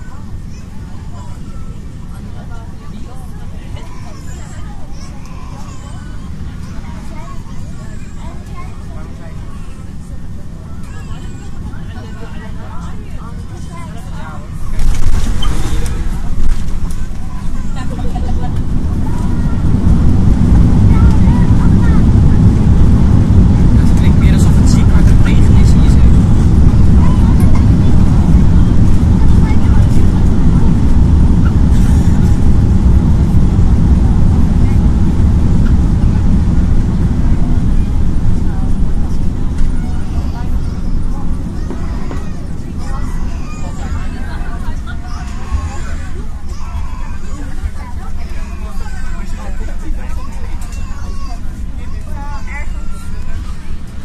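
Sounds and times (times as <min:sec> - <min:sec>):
engine and airflow rumble: 0:00.0 - 0:54.0.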